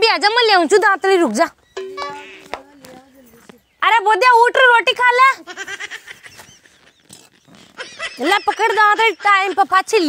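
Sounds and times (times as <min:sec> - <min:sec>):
faint outdoor background noise: 0:00.0 - 0:10.0
faint high chirps: 0:00.9 - 0:03.8
woman speaking: 0:08.2 - 0:10.0.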